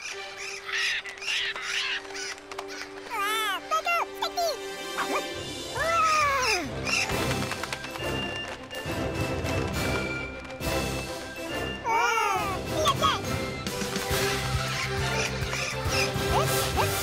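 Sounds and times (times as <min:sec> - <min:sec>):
light cartoon music: 0:00.0 - 0:17.0
high cartoon vocalising: 0:14.7 - 0:17.0.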